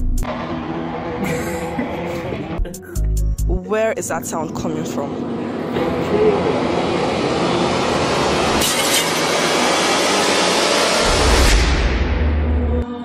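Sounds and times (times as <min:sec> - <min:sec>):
loud steady wash of noise: 0:04.0 - 0:11.5.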